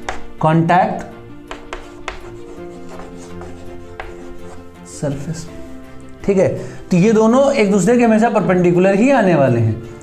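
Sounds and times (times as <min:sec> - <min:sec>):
chalk tapping on blackboard: 0:00.0 - 0:00.4, 0:01.4 - 0:05.3
soft background music: 0:00.0 - 0:10.0.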